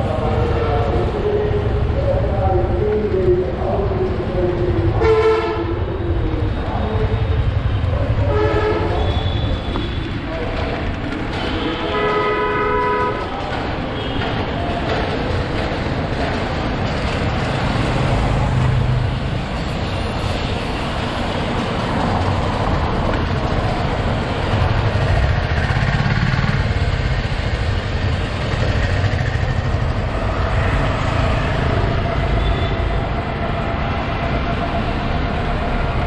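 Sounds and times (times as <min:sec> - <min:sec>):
road traffic rumble: 0:00.0 - 0:36.0
vehicle horn: 0:05.0 - 0:05.8, 0:08.3 - 0:10.0, 0:11.4 - 0:13.2.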